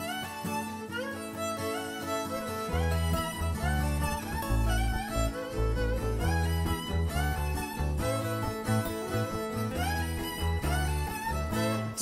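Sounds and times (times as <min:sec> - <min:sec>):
acoustic guitar: 0:00.0 - 0:12.0
fiddle melody: 0:00.0 - 0:12.0
electric bass: 0:02.8 - 0:12.0.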